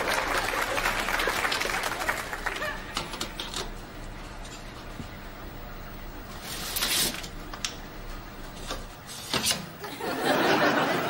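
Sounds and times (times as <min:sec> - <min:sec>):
audience laughter: 0:00.0 - 0:03.0, 0:09.8 - 0:11.0.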